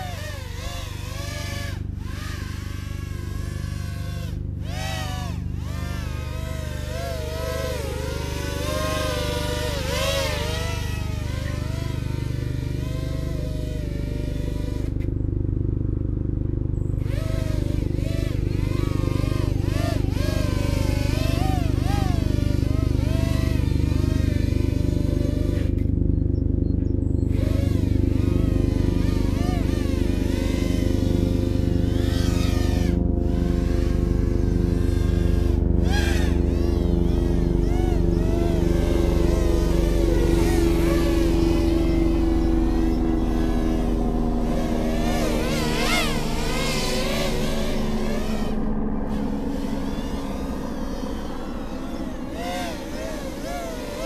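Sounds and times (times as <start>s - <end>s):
drone buzzing whine: 0.0s - 54.0s.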